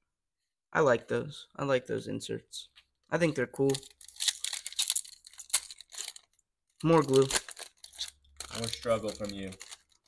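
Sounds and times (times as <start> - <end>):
crackling rips: 3.7 - 10.0
foil wrapper tearing: 3.9 - 10.0.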